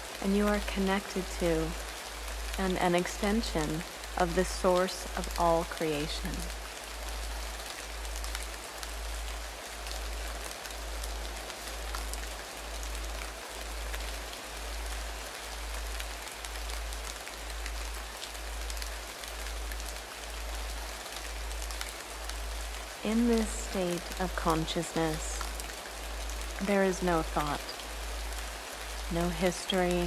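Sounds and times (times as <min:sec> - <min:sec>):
rain-like hiss: 0:00.0 - 0:30.0.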